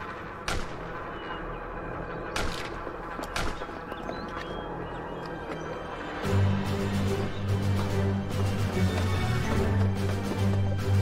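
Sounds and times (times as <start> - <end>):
gunshots: 0.0 - 1.2, 2.3 - 3.9
continuous noisy din: 0.0 - 11.0.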